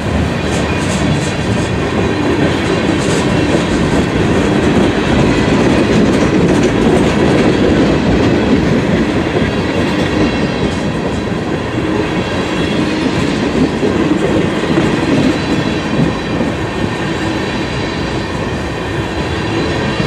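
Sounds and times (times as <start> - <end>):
train wheels clattering over rails: 0.0 - 20.0.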